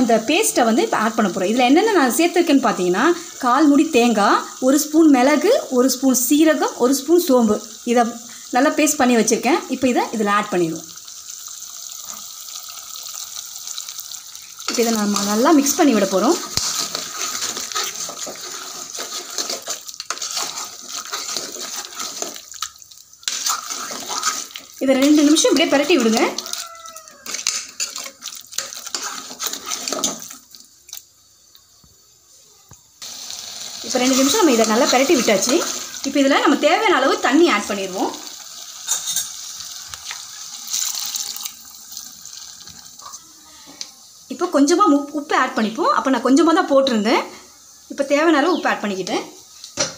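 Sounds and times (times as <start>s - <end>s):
food sizzling in pot: 0.0s - 49.9s.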